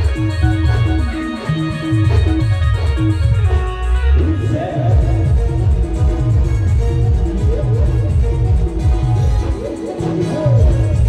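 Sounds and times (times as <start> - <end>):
heavy bass beat: 0.0 - 11.0.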